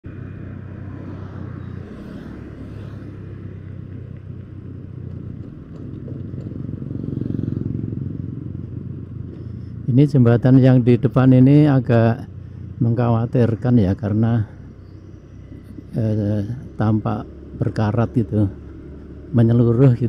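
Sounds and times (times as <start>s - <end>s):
road noise: 0.0s - 20.0s
vehicle engine running: 0.1s - 20.0s.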